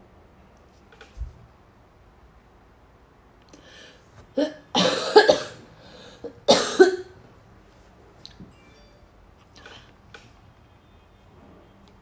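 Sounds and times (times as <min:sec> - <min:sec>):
woman coughing: 0:04.4 - 0:05.6, 0:06.4 - 0:07.2.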